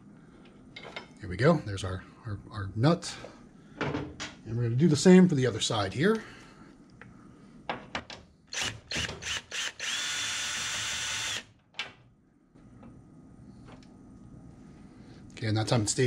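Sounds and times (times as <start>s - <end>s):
cordless drill spinning: 8.5s - 11.5s.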